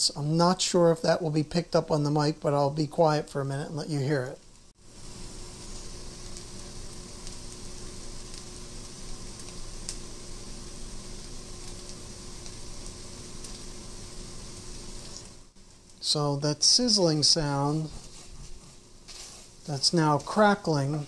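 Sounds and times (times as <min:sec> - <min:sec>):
food sizzling in a skillet: 0:03.9 - 0:21.0.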